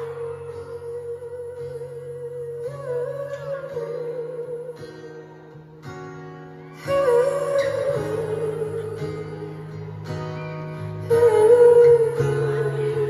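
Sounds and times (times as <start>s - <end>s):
person singing with vibrato: 0.0s - 5.6s, 6.8s - 13.0s
guitar and keyboard chords: 0.0s - 13.0s.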